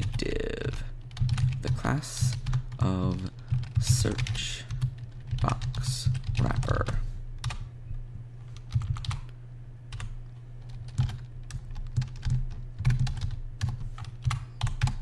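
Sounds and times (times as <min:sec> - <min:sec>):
computer keyboard typing: 0:00.0 - 0:07.7, 0:08.6 - 0:15.0
steady low hum: 0:00.0 - 0:15.0.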